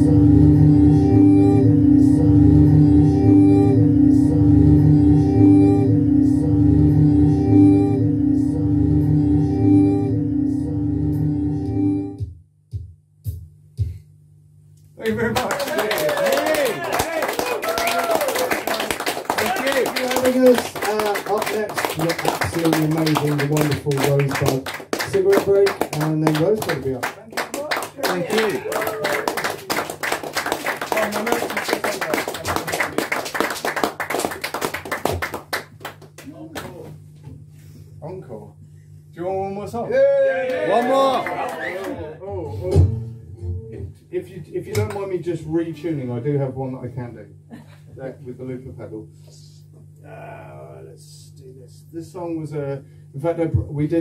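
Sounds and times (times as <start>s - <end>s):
electronic drone: 0.0s - 12.2s
low hum: 0.0s - 12.2s
audience applauding and cheering: 15.1s - 36.7s.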